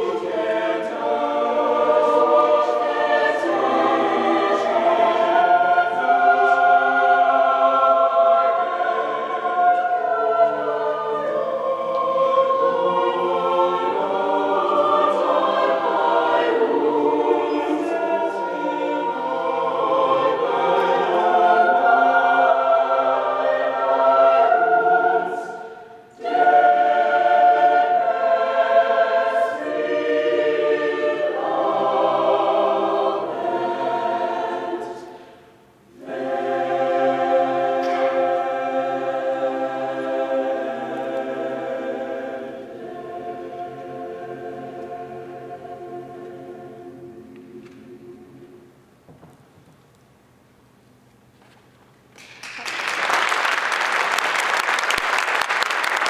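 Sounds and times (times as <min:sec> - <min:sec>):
mixed choir singing: 0:00.0 - 0:48.8.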